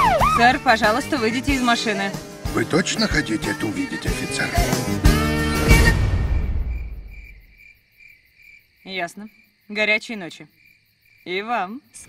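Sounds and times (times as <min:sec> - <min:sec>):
trailer music: 0:00.0 - 0:07.5
crickets chirping: 0:05.6 - 0:12.0.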